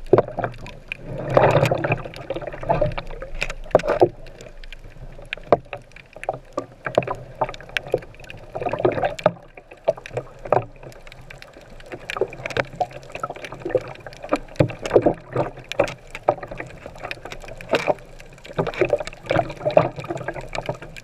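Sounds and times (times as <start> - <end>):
muffled underwater water wash: 0.0 - 21.0.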